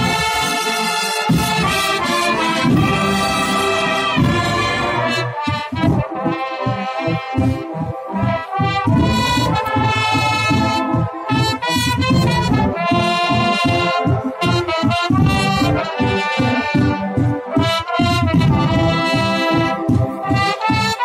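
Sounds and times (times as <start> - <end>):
wind band playing loud chords: 0.0 - 21.0.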